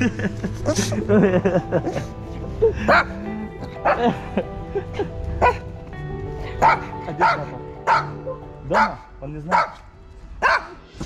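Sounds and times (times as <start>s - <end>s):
background music: 0.0s - 11.0s
dogs barking and yipping: 2.8s - 4.2s, 5.3s - 9.8s, 10.4s - 10.9s.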